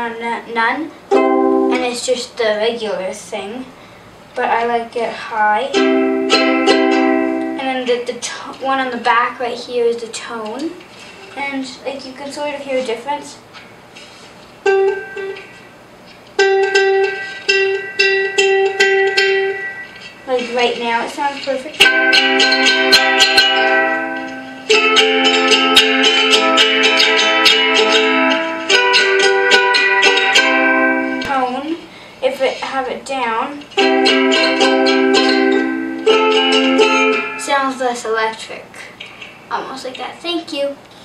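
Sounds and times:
plucked ukulele notes: 1.1s - 1.8s, 5.7s - 7.6s, 14.6s - 15.7s, 16.4s - 31.5s, 33.7s - 37.6s.

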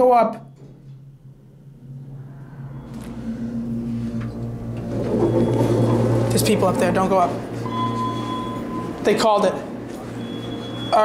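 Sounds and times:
elevator pump motor humming: 0.5s - 11.0s.

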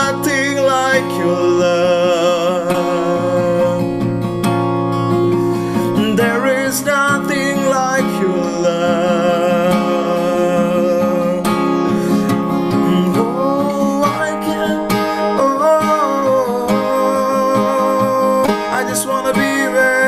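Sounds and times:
man singing: 0.0s - 4.3s, 5.8s - 20.0s
acoustic guitar: 0.0s - 20.0s.

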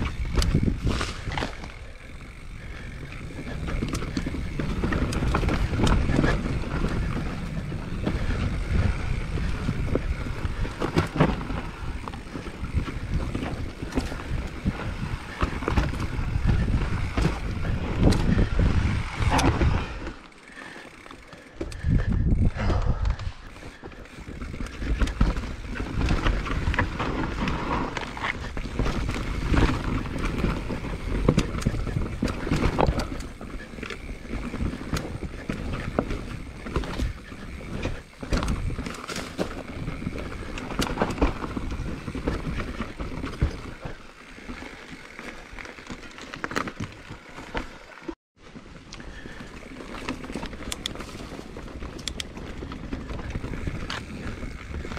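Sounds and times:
wind buffeting microphone: 0.0s - 20.1s, 21.6s - 45.1s
bike rattling over bumps: 0.0s - 54.9s
bike tyre noise: 0.0s - 54.9s.

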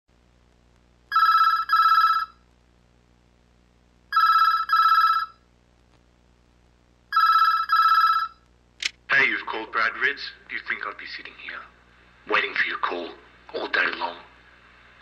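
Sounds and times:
desk telephone ringing: 1.1s - 2.4s, 4.1s - 5.4s, 7.1s - 8.4s.

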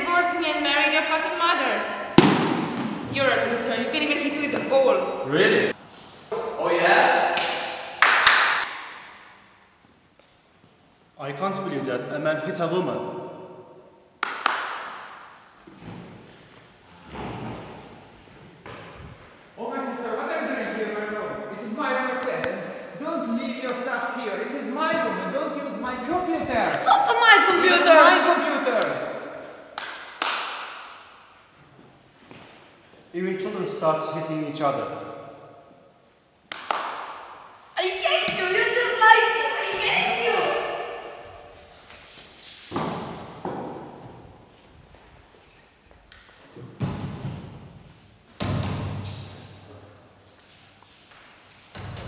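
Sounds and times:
sharp slaps: 2.2s - 3.1s, 7.3s - 9.3s, 14.2s - 15.3s, 29.7s - 31.2s, 36.5s - 37.6s
sharp hand smacks: 36.5s - 37.2s.

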